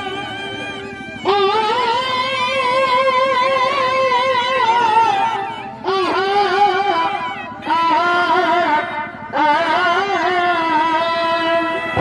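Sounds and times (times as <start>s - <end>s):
double-reed pipe long note: 0.0s - 12.0s.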